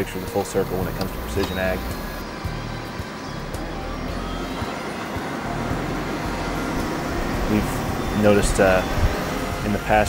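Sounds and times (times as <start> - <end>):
background music: 0.0 - 10.0
tractor engine running: 0.0 - 10.0.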